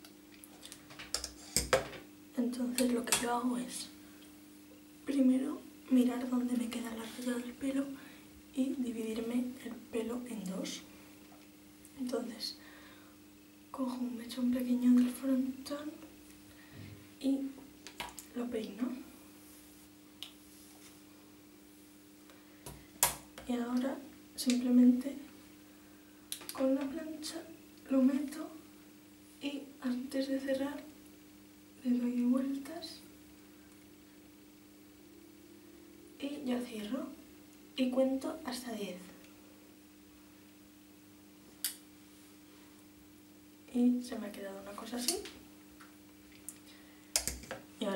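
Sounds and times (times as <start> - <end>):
faint steady hum: 0.0 - 47.9.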